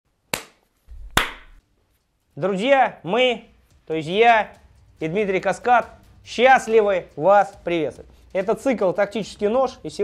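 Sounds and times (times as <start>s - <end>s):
hand claps: 0.3s - 1.6s
low thump: 0.9s - 1.6s.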